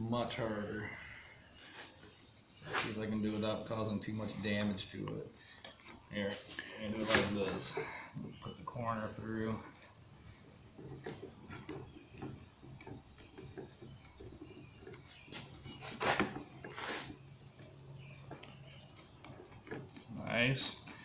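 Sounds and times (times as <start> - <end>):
wax sheet rustling and scraping: 15.2 - 17.2.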